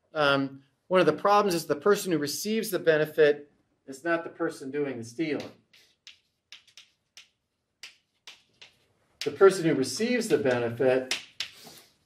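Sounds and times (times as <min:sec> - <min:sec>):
chalk tapping on blackboard: 0:05.4 - 0:09.4, 0:10.3 - 0:11.9.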